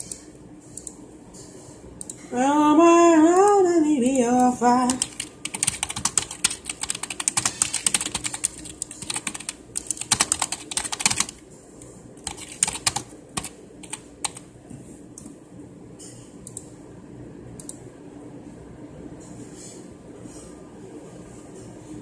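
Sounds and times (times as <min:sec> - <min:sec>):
typing on a computer keyboard: 0:04.8 - 0:11.4, 0:12.2 - 0:14.4.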